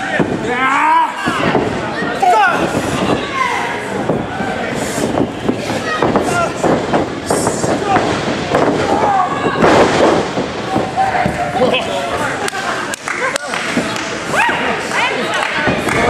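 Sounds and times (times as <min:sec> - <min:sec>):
crowd shouting and yelling: 0:00.0 - 0:16.0
bodies hitting ring canvas: 0:04.9 - 0:11.5
slaps and thuds of wrestlers: 0:05.0 - 0:11.5
loud crash: 0:06.0 - 0:11.4.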